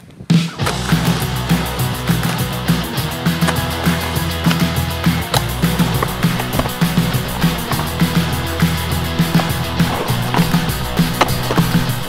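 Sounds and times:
skateboard rolling on concrete: 0:00.0 - 0:12.0
music with steady beat: 0:00.4 - 0:12.0
skateboard knocks: 0:05.3 - 0:12.0.

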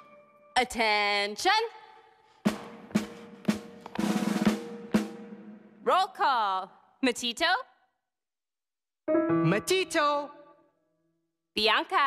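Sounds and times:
drum playing march cadence: 0:02.4 - 0:05.8.

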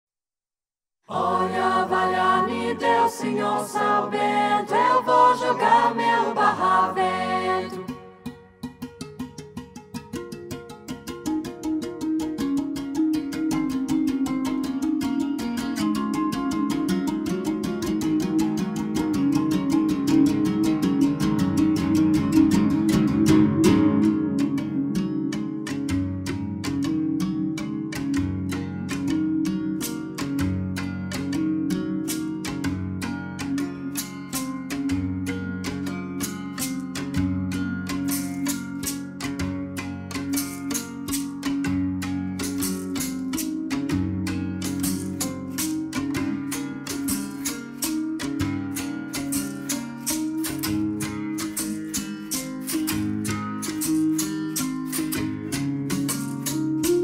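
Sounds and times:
berimbaus playing rhythms: 0:01.1 - 0:57.0.

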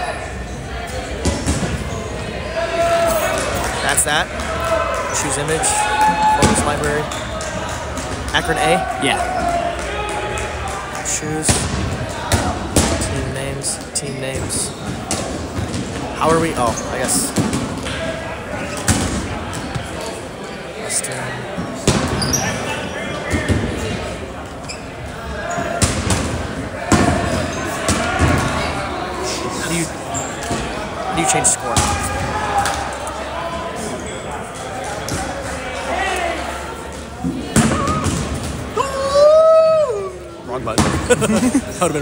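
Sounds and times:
echoing crowd chatter: 0:00.0 - 0:42.0.

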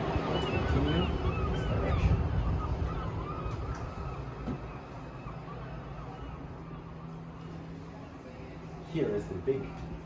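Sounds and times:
wind buffeting microphone: 0:00.0 - 0:04.9
city traffic rumble: 0:00.0 - 0:10.0.

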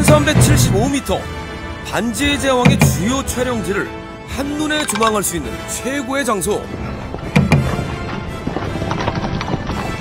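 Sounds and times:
music: 0:00.0 - 0:10.0
horse hoofbeats galloping: 0:07.1 - 0:10.0.

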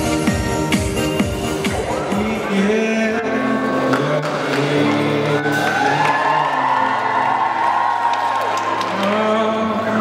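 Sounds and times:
crowd whooping and cheering: 0:04.7 - 0:10.0.

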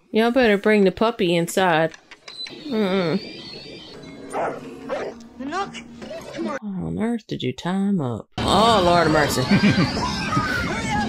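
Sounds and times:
dog barking: 0:04.3 - 0:05.2.

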